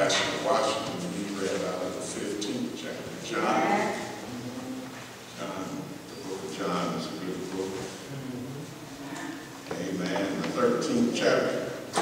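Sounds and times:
man speaking over a microphone: 0.0 - 3.9, 5.3 - 8.1, 9.6 - 11.9.

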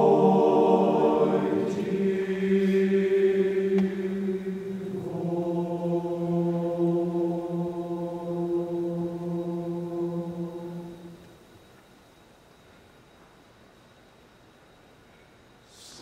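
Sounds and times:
men's choir singing: 0.0 - 11.4.

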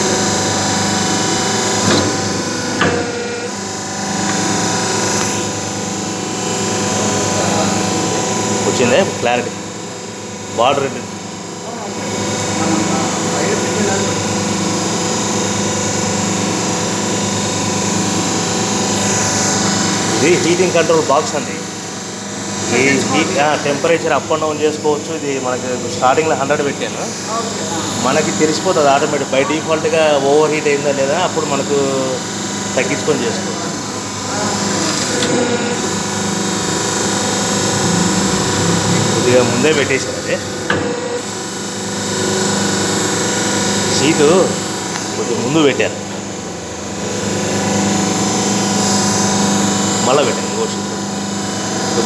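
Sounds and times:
electric motor and pump humming: 0.0 - 52.0.

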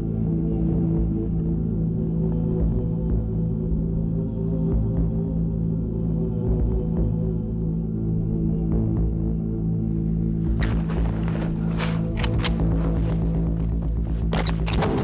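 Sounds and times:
low droning hum: 0.0 - 15.0.

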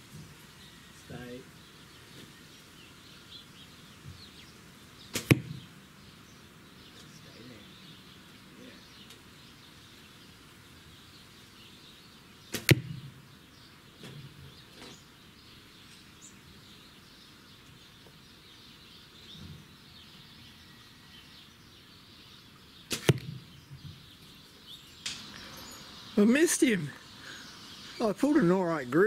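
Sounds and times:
arrows hitting foam target: 5.1 - 5.7, 12.5 - 13.2, 22.9 - 23.5.

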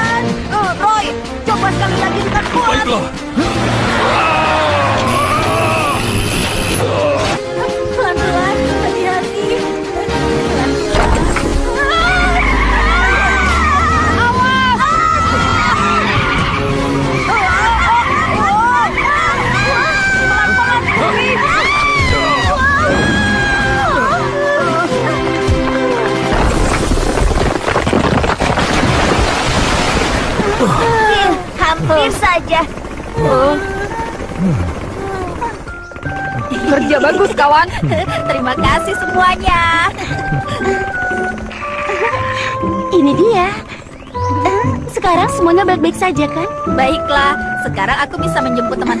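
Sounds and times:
high squealing tones: 5.0 - 6.9.

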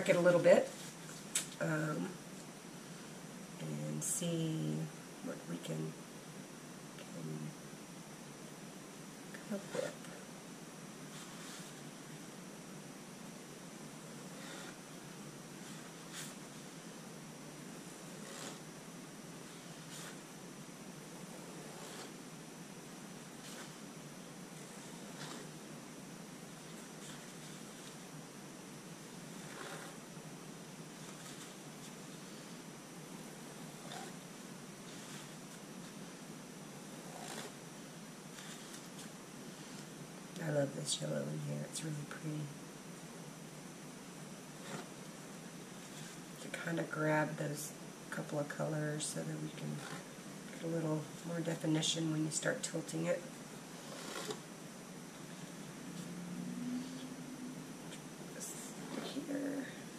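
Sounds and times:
faint high whine: 0.0 - 59.9
room tone hiss: 0.0 - 59.9.

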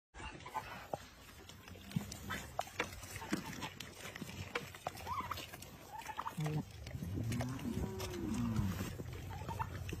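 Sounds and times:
goats chewing crunchily: 0.2 - 10.0.

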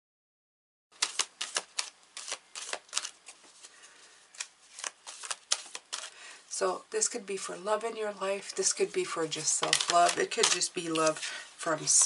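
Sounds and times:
cards being shuffled: 1.0 - 6.2, 9.5 - 12.0.

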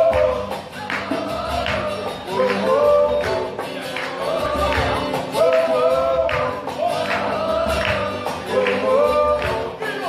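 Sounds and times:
man singing: 0.0 - 10.0
strummed acoustic guitar: 0.0 - 10.0.

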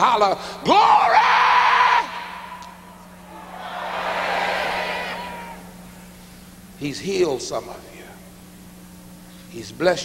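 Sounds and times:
preacher shouting: 0.7 - 5.9
congregation shouting and cheering: 0.8 - 6.1.

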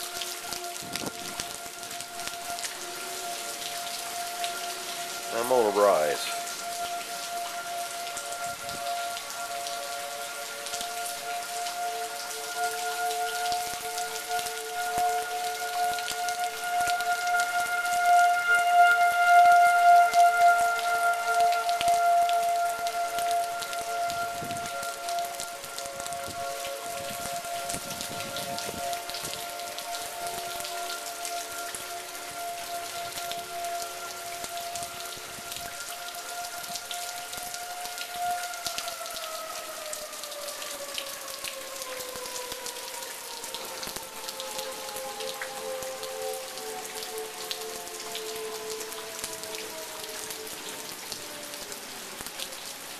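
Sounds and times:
rain falling: 0.0 - 52.9
tornado warning sirens wailing: 0.0 - 52.9.

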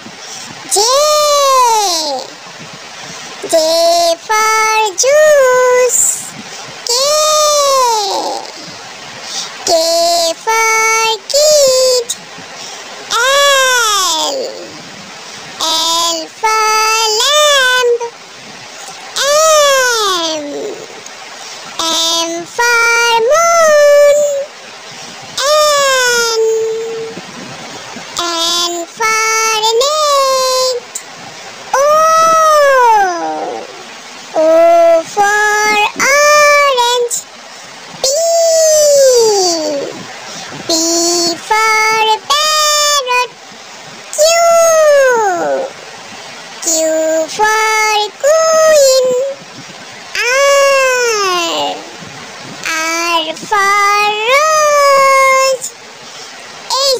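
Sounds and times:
high child-like voice calling: 0.0 - 12.2, 13.1 - 14.9, 15.6 - 24.6, 25.2 - 27.3, 28.0 - 31.0, 31.7 - 37.3, 37.9 - 43.4, 44.1 - 45.8, 46.6 - 49.4, 50.0 - 52.0, 52.6 - 55.8, 56.7 - 56.9.

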